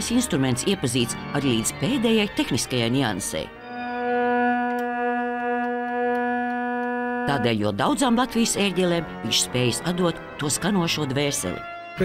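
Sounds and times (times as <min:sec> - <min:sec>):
pipe organ held note: 0:03.5 - 0:10.4.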